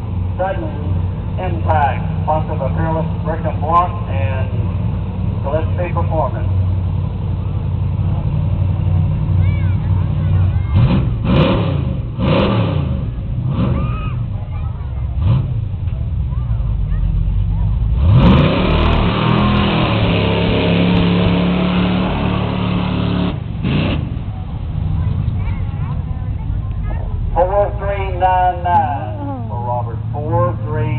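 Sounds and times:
truck engine idling and revving: 0:00.0 - 0:30.9.

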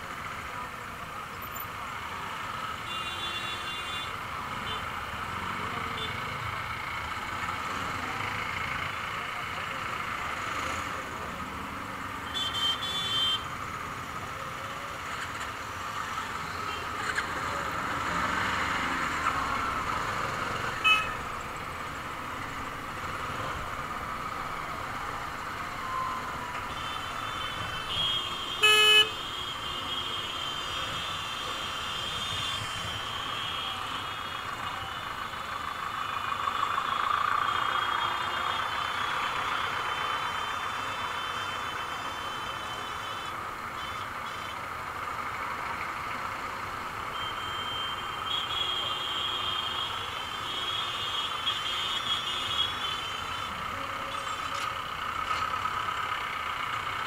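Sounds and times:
traffic engine and road noise: 0:00.0 - 0:57.0
vehicle horn blast: 0:20.8 - 0:21.2, 0:26.8 - 0:33.8.

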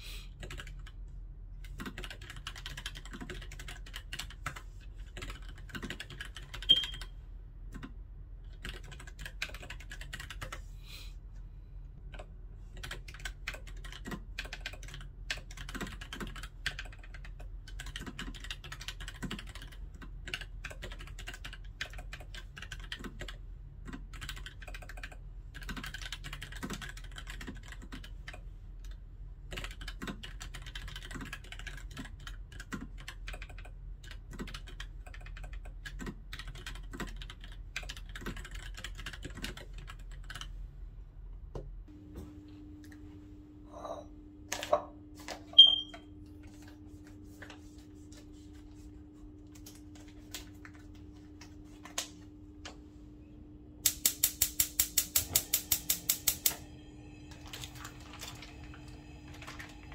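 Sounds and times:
mechanical keyboard typing: 0:00.4 - 0:01.0, 0:01.6 - 0:10.6, 0:12.1 - 0:40.5, 0:53.9 - 0:56.6, 0:57.4 - 0:59.9.

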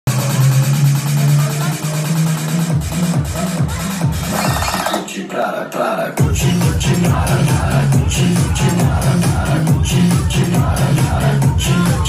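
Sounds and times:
electronic dance music: 0:00.1 - 0:12.0
voices: 0:02.9 - 0:12.0.

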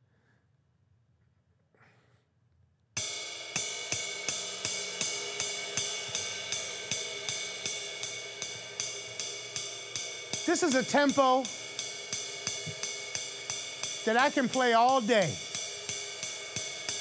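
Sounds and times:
ride cymbal swing pattern: 0:03.0 - 0:17.0.

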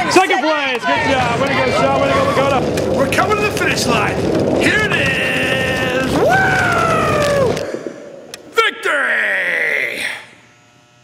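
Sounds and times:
faint electrical hum: 0:00.0 - 0:11.0
man yelling: 0:05.1 - 0:07.6, 0:08.6 - 0:10.1.

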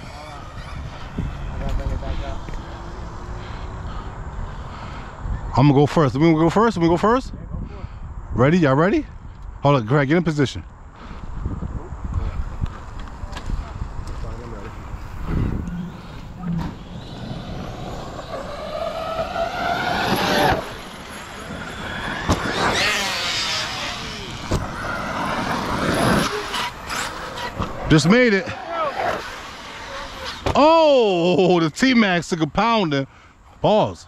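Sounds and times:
rc truck electric motors whining: 0:00.0 - 0:04.2, 0:15.2 - 0:30.5
wind rumble on microphone: 0:00.0 - 0:09.6, 0:10.8 - 0:26.4.

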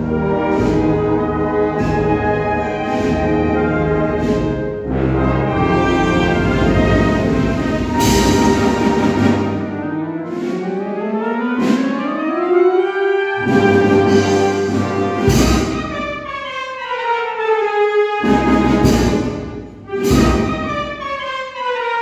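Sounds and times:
brass and woodwind band march: 0:00.0 - 0:22.0
drums and cymbals: 0:05.8 - 0:09.7, 0:13.4 - 0:16.5, 0:18.2 - 0:21.2.

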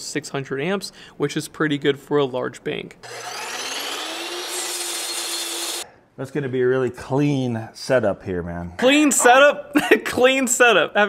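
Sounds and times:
miter saw cutting metal: 0:03.0 - 0:05.8.

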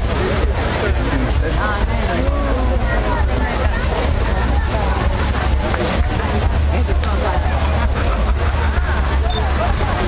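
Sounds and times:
fountain water jets rushing: 0:00.0 - 0:10.0
people chatting: 0:00.0 - 0:10.0.

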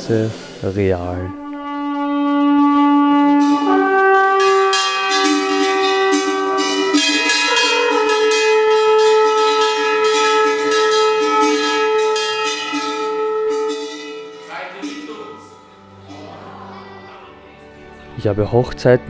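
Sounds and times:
bells ringing and jingling: 0:04.5 - 0:16.8
men singing sustained chords: 0:12.2 - 0:18.3.

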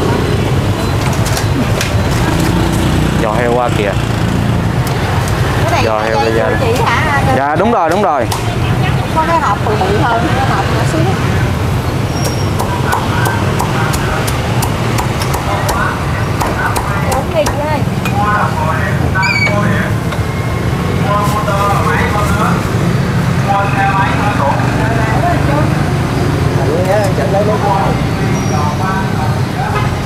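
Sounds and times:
traffic hum: 0:00.0 - 0:30.0.

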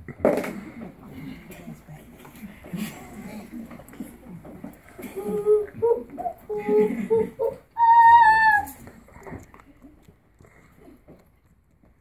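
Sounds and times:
child's high-pitched calls: 0:07.8 - 0:08.7.

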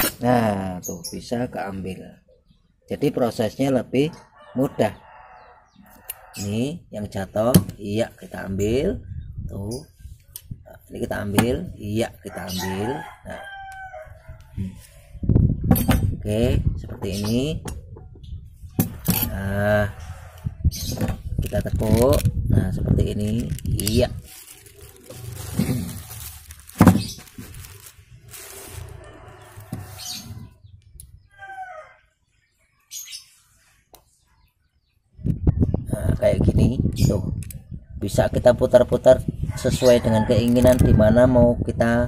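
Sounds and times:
bird chirp: 0:00.6 - 0:03.6, 0:28.8 - 0:35.7
plastic bag rustling: 0:21.0 - 0:30.4.

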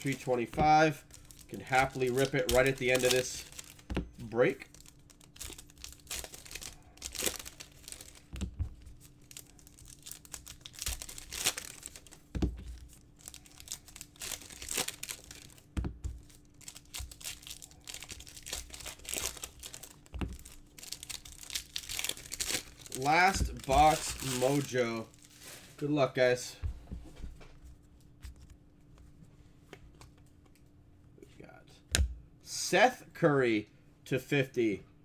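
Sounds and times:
foil packs tearing and crinkling: 0:00.0 - 0:25.6.

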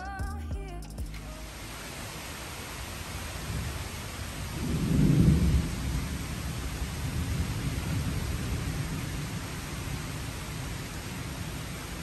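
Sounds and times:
steady rain: 0:00.0 - 0:12.0
low rumble of thunder: 0:03.4 - 0:11.9.

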